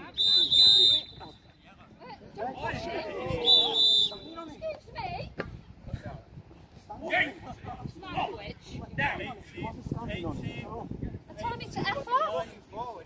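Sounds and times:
referee's whistle blasts: 0:00.0 - 0:01.6, 0:03.4 - 0:04.5
voices calling out: 0:00.0 - 0:05.3.

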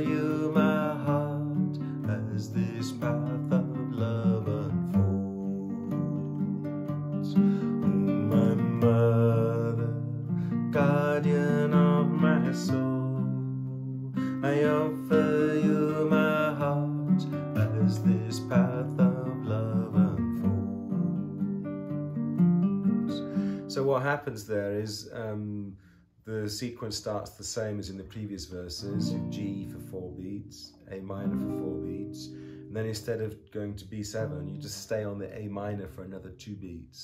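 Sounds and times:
man singing: 0:00.0 - 0:21.5, 0:28.4 - 0:37.0
acoustic guitar strumming: 0:00.0 - 0:25.3, 0:28.8 - 0:35.9.

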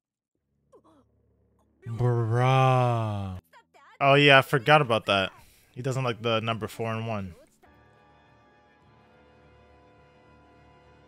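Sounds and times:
faint voice: 0:01.8 - 0:04.3
man's drawn-out exclamation: 0:01.9 - 0:03.4.

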